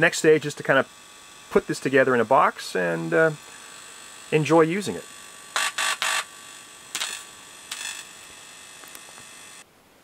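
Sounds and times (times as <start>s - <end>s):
amplified hiss with buzz: 0.0s - 10.0s
crackle bursts: 5.5s - 9.6s.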